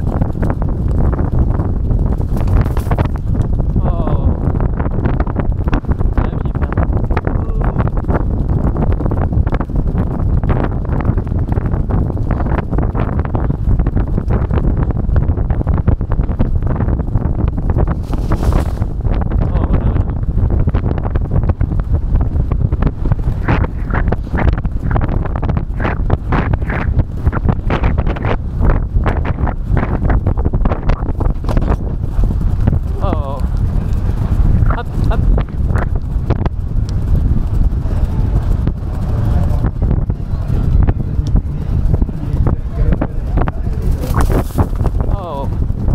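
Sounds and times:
horses galloping on turf: 0.0 - 45.9
wind buffeting microphone: 0.0 - 45.9.

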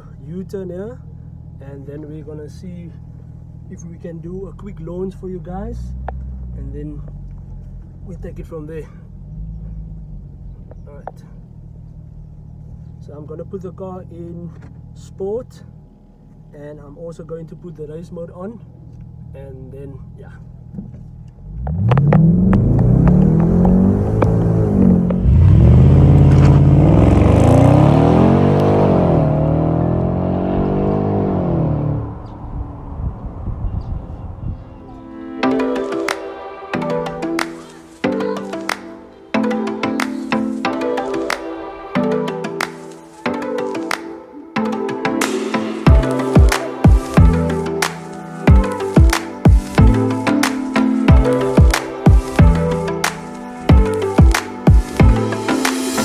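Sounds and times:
car engine low hum: 0.0 - 38.8, 44.6 - 56.0
car engine accelerating hard: 20.6 - 34.8.

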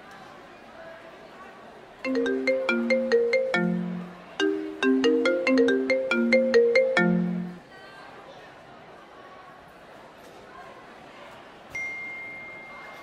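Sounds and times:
smartphone ringtone melody: 2.1 - 7.6.

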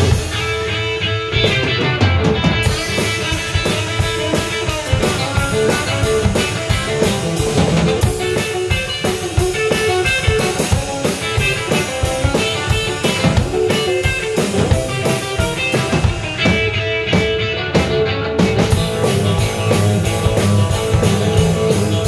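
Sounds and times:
drum kit beat: 0.0 - 22.0
electric guitar: 0.0 - 22.0.

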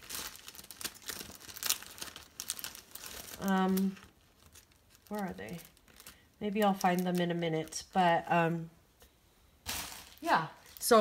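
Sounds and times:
plastic packaging crinkling: 0.0 - 8.2, 9.6 - 11.0.

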